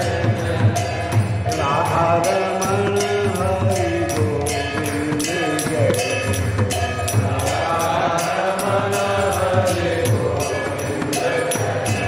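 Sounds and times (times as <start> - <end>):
voices chanting: 0.0 - 6.3, 7.2 - 12.0
hand cymbals beat: 0.0 - 12.0.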